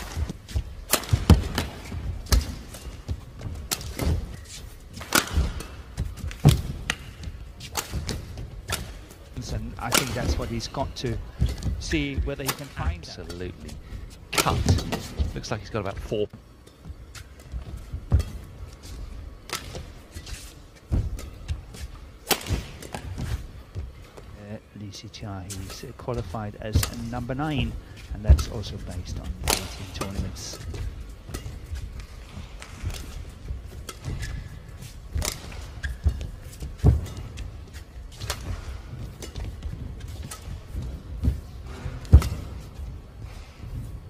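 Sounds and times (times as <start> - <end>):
racket striking shuttlecock: 0.0 - 9.1, 9.8 - 10.4, 22.2 - 23.2, 29.4 - 37.5, 38.2 - 42.7.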